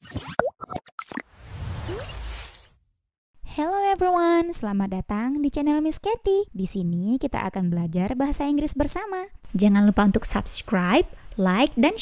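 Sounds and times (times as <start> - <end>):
whoosh: 1.3 - 2.8.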